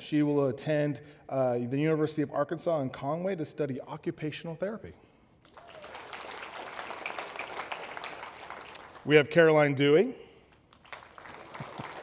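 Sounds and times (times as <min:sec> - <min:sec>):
congregation applauding: 0:05.4 - 0:09.6, 0:10.6 - 0:12.0.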